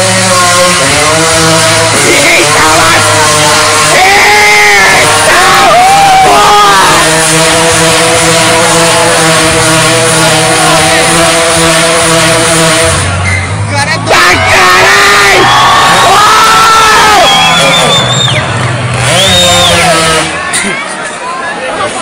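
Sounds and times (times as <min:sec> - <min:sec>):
motorcycle engine revving: 0:00.0 - 0:20.6
crowd voices: 0:00.0 - 0:22.0.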